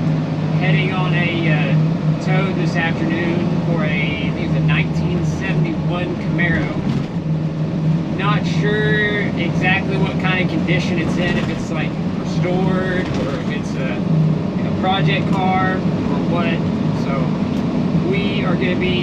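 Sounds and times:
road noise: 0:00.0 - 0:19.0
truck engine drone: 0:00.0 - 0:19.0
man talking: 0:00.6 - 0:07.0, 0:08.1 - 0:17.4, 0:18.0 - 0:19.0.

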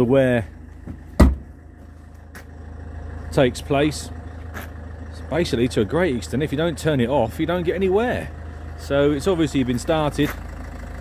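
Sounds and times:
diesel engine idling: 0:00.0 - 0:11.0
sharp thump: 0:00.8 - 0:01.6.

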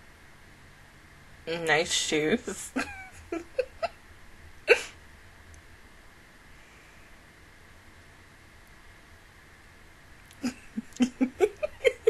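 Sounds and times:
faint room hum: 0:00.0 - 0:12.0
woman laughing: 0:01.9 - 0:03.9, 0:04.7 - 0:04.9, 0:10.4 - 0:12.0.

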